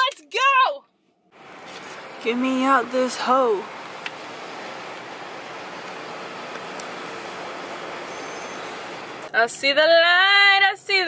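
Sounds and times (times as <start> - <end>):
parking garage background hiss: 1.4 - 11.0.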